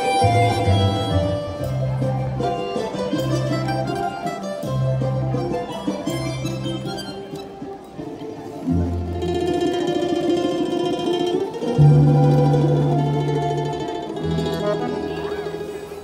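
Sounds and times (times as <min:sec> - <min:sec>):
button accordion: 0:00.0 - 0:07.3, 0:14.3 - 0:15.7
domras and balalaikas plucked: 0:00.0 - 0:16.0
low bass notes: 0:00.2 - 0:02.6, 0:11.6 - 0:16.0.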